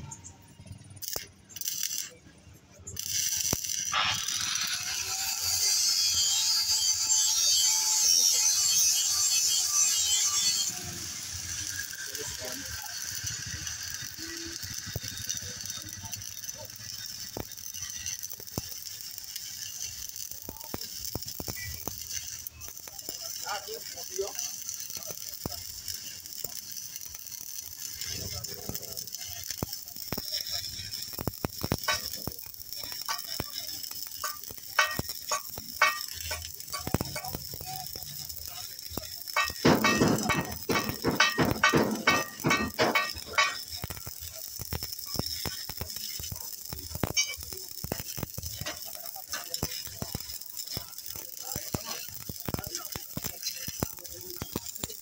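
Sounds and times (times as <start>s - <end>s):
welding arc crackling: 0.0s - 55.0s.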